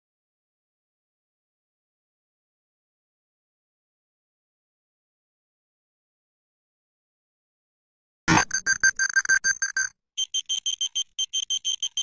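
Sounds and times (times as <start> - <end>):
fast high electronic beeps: 8.3 - 12.0.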